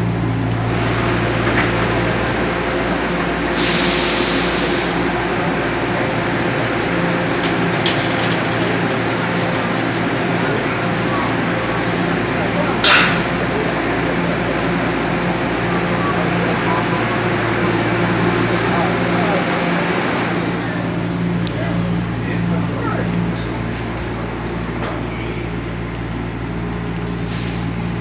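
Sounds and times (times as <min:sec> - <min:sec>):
train equipment humming: 0:00.0 - 0:28.0.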